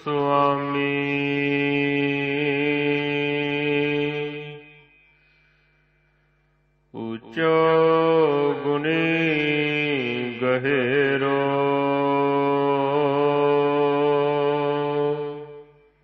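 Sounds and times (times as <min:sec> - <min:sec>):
man chanting: 0:00.0 - 0:05.0, 0:07.0 - 0:16.0.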